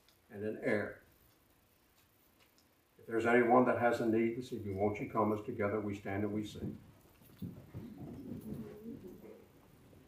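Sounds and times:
creaks and shuffling: 0:03.8 - 0:10.0.

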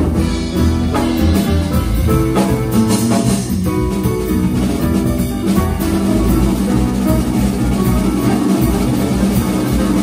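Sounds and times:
double bass: 0:00.0 - 0:10.0
drum kit: 0:00.0 - 0:10.0
guitar: 0:00.0 - 0:10.0
piano: 0:00.0 - 0:10.0.

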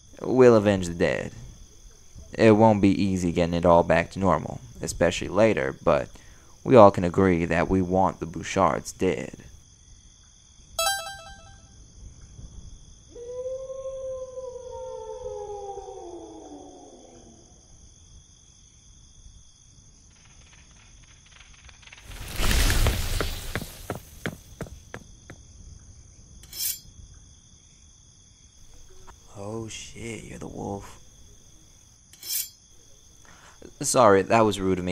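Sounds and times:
crickets chirping: 0:00.0 - 0:34.9
long call sliding down in pitch: 0:10.8 - 0:11.6.

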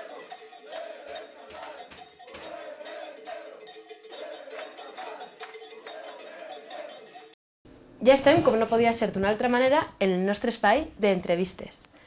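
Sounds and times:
crowd marching: 0:00.0 - 0:07.2.

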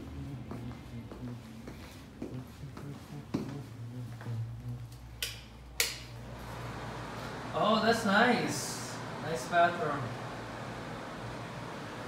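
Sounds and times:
footsteps in tiled room: 0:00.0 - 0:05.2
low steady hum: 0:00.0 - 0:12.0.

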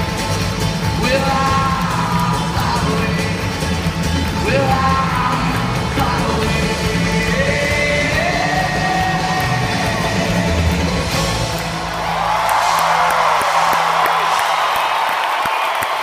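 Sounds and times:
live band music: 0:00.0 - 0:14.6
crowd cheering and screaming: 0:08.9 - 0:16.0.

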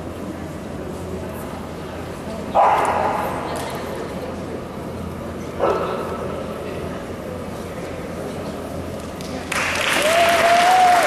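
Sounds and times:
dog barking: 0:02.6 - 0:03.2.

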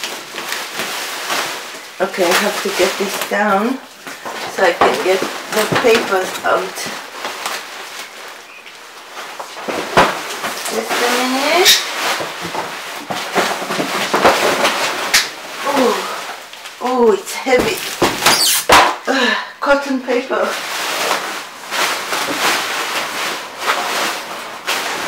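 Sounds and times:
bubble-wrap rustling: 0:00.0 - 0:25.0.

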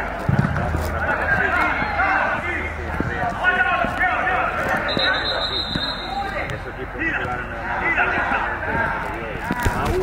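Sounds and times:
ball thudding off feet: 0:00.2 - 0:02.0.

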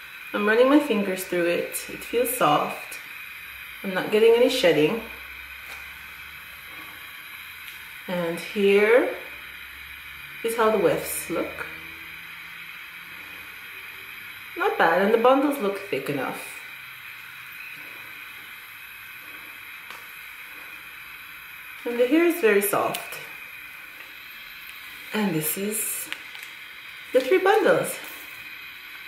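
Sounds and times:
faint hum: 0:00.0 - 0:29.0
steady low hiss: 0:00.0 - 0:29.0.

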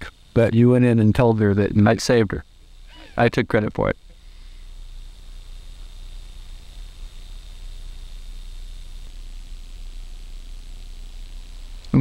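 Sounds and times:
faint low hum: 0:00.0 - 0:12.0
steady low hiss: 0:00.0 - 0:12.0.

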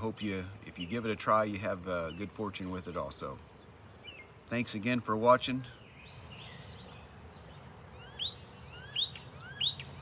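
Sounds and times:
bird trill: 0:05.8 - 0:10.0
short rising bird chirps: 0:05.8 - 0:10.0.

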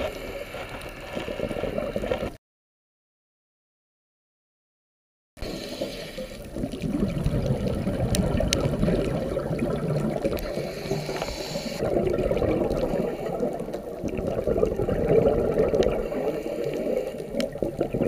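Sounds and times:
muffled underwater rush: 0:05.4 - 0:18.0
bright hiss: 0:10.5 - 0:11.8
faint sharp clicks: 0:16.6 - 0:17.6.

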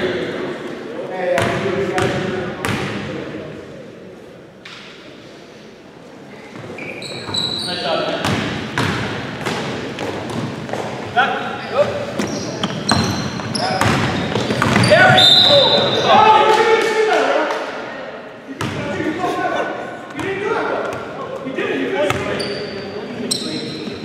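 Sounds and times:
players' voices: 0:00.0 - 0:24.0
short high squeaks: 0:06.8 - 0:07.9
basketball bouncing on wood floor: 0:12.2 - 0:14.9.

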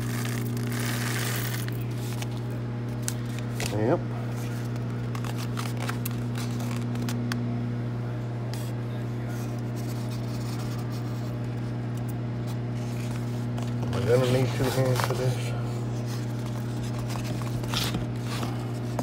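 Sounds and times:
electrical appliance hum: 0:00.0 - 0:19.0.

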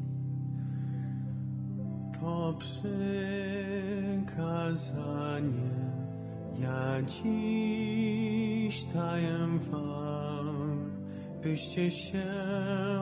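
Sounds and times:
hymn singing: 0:00.0 - 0:13.0
organ chords: 0:00.0 - 0:13.0.

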